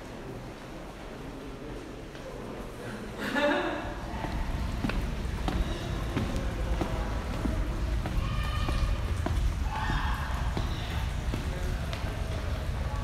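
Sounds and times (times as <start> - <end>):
faint voices: 0.0 - 13.0
footsteps on stone floor: 4.2 - 12.6.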